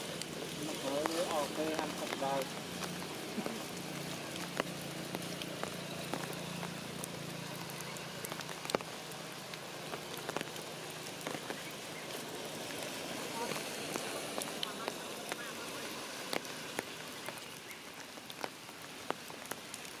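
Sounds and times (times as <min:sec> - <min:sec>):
rain falling on leaves: 0:00.0 - 0:20.0.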